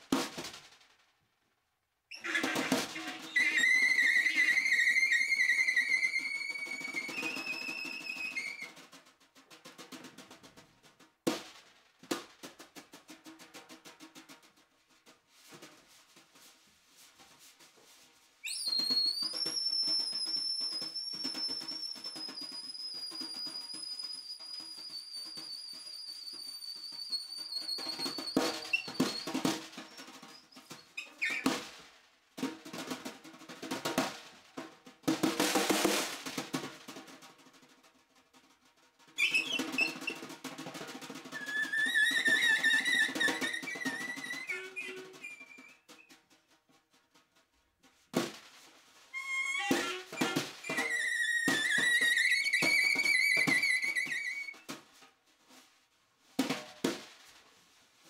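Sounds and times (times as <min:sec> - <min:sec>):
snare drum strokes and rolls: 0:00.0 - 0:01.2, 0:02.1 - 0:58.0
saxophone high squeal: 0:02.1 - 0:08.7, 0:18.4 - 0:29.4, 0:39.2 - 0:40.2, 0:41.4 - 0:46.1, 0:49.2 - 0:54.6.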